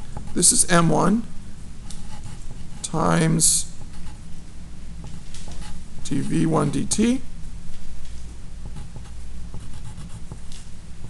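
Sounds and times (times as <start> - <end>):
steady low hum: 0.0 - 11.0
pen scratching on paper: 8.7 - 10.5.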